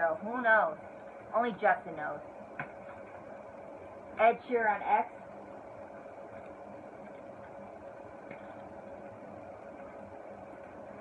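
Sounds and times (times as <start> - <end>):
room hum with faint constant tone: 0.0 - 11.0.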